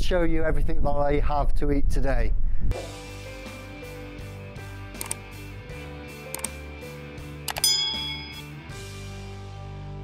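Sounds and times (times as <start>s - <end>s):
soft background music: 2.7s - 10.0s
mouse clicks: 6.3s - 6.6s
bright bell ding: 7.5s - 8.6s.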